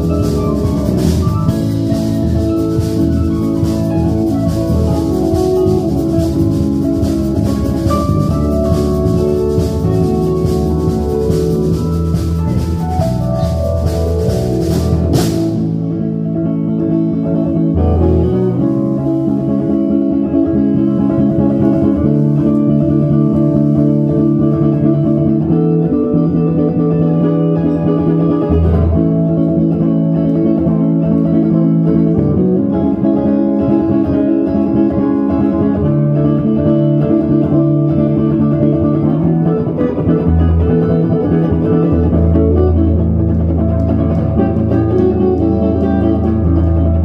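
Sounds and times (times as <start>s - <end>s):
electric bass: 0.0s - 47.0s
electric guitar: 0.0s - 47.0s
keyboard chords: 0.0s - 47.0s.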